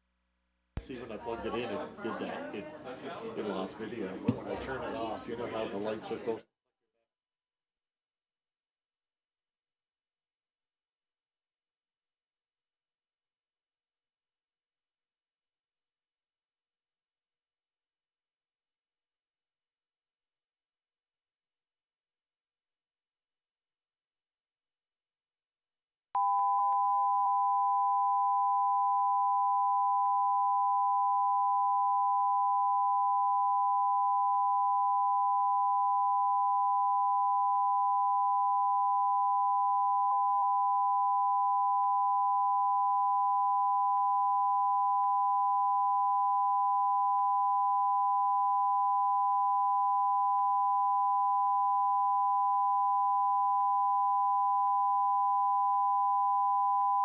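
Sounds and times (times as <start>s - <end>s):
two-tone electronic test tone: 26.2s - 57.0s.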